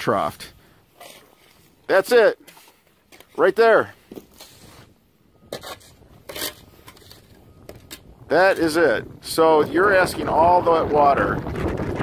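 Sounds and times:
gutter section scraping and rubbing: 0.9s - 9.0s.

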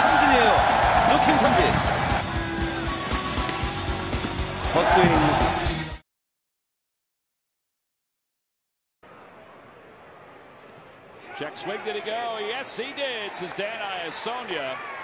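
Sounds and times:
broadcast music: 0.0s - 6.0s
commentator talking: 11.3s - 14.8s.

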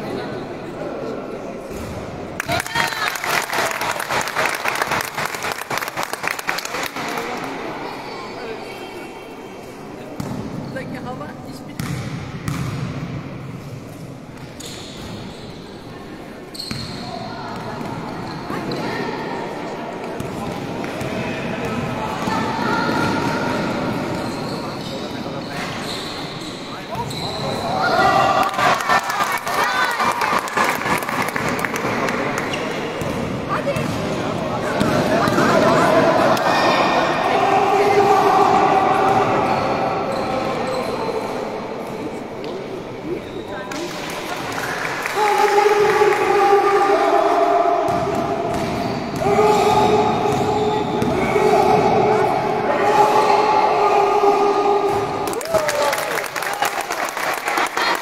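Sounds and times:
basketball bouncing on court: 10.2s - 10.6s, 11.8s - 13.1s, 31.2s - 35.8s, 47.9s - 51.2s
voices calling out in hall: 15.8s - 58.0s.

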